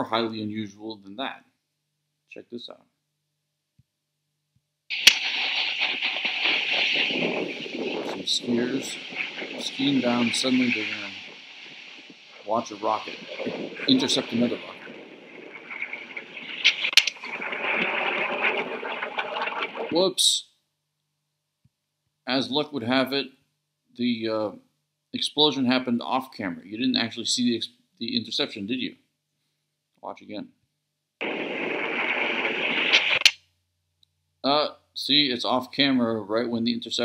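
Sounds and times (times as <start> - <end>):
wind on microphone: 4.9 - 20.0, 31.2 - 33.3
rushing outdoor noise: 4.9 - 20.1, 31.2 - 33.3
sharp cracks: 4.9 - 20.1, 31.2 - 33.4.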